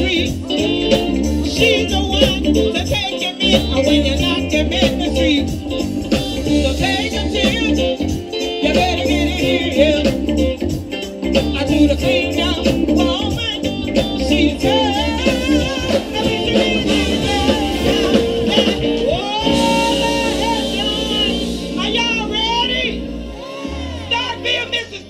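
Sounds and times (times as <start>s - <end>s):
drums with steady beat: 0.0s - 25.0s
electric bass: 0.0s - 25.0s
person singing: 0.0s - 25.0s.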